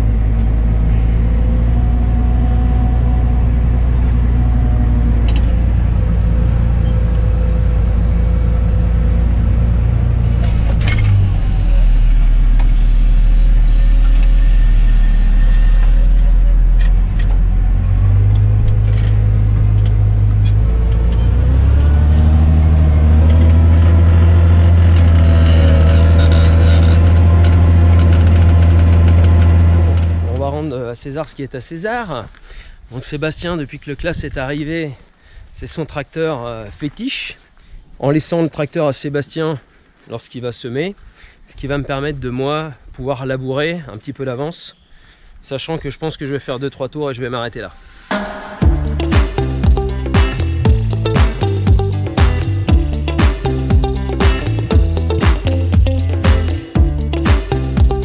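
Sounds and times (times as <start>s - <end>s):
tractor engine running under load: 0.0s - 30.7s, 48.6s - 58.0s.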